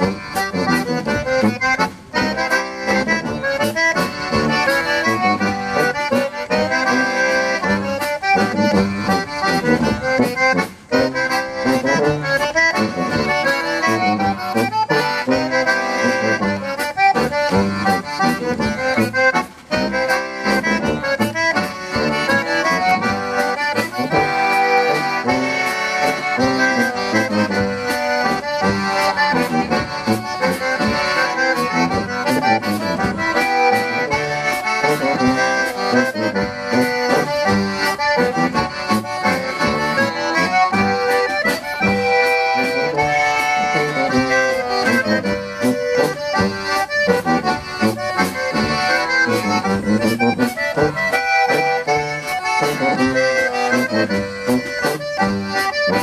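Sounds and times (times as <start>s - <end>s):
concertina melody: 0.0s - 56.0s
tuba bass: 0.0s - 56.0s.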